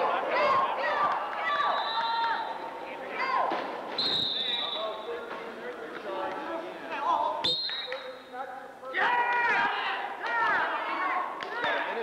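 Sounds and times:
players' voices and shouts: 0.0s - 12.0s.

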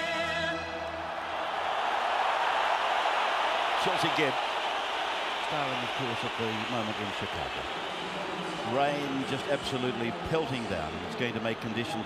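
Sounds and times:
stadium crowd cheering and applauding: 0.0s - 12.0s.

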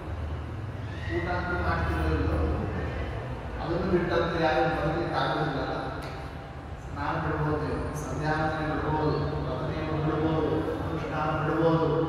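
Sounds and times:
steady low hum: 0.0s - 12.0s
man speaking through microphone: 1.0s - 12.0s.

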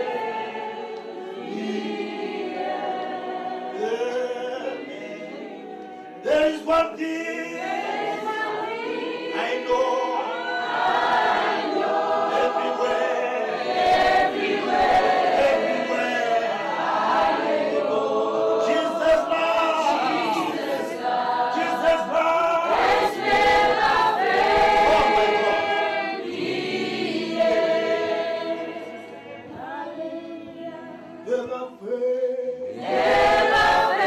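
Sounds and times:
group singing a gospel song: 0.0s - 34.0s.

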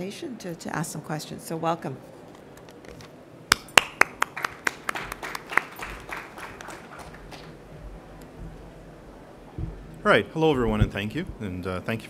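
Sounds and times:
sparse applause: 3.8s - 7.7s.

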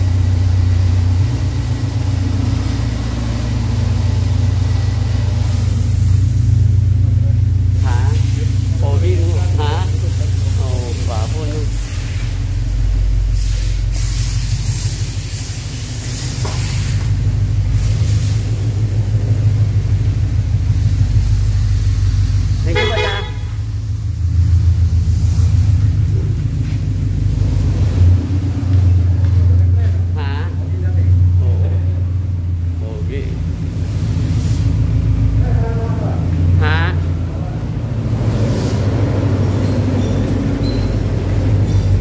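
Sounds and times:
car engine low rumble: 0.0s - 42.0s.

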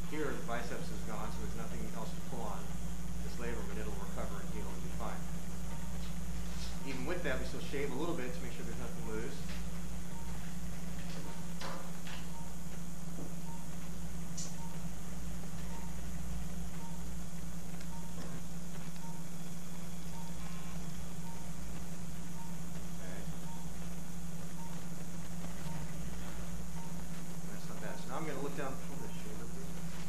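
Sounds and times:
low hum of motorized shaver: 0.0s - 30.0s
patient monitor beeps: 0.0s - 30.0s.

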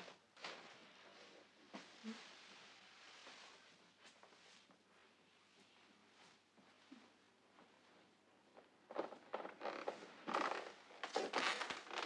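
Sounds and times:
clothing rustling and creaking: 0.0s - 12.0s.

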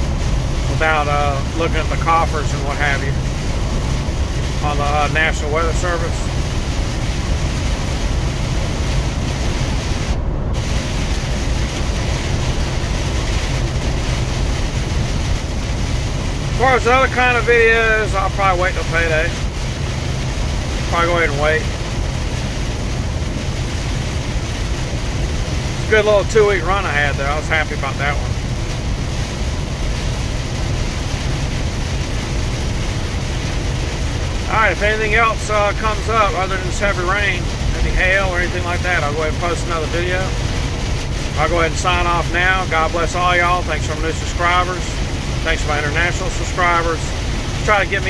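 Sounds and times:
heavy rain on windshield: 0.0s - 48.0s
truck engine rumble: 0.0s - 48.0s
tyres on wet road: 0.0s - 48.0s.

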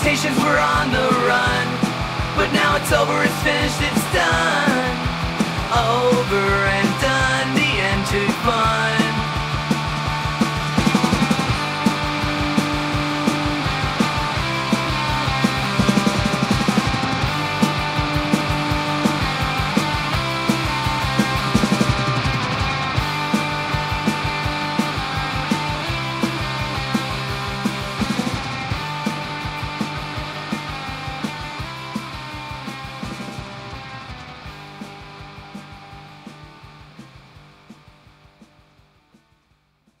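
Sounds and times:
punk rock guitars and drums: 0.0s - 39.5s.

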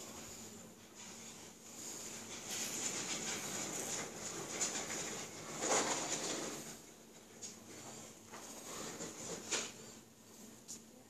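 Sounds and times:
rustling and handling sounds: 0.0s - 11.0s.

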